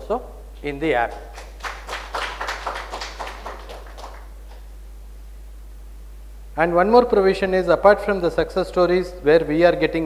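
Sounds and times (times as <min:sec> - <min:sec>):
audience applause: 0:01.4 - 0:04.3.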